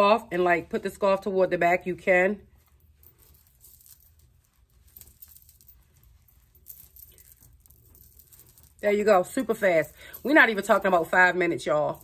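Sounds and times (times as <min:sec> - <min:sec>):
rustling of hair and fabric: 0:00.0 - 0:12.0.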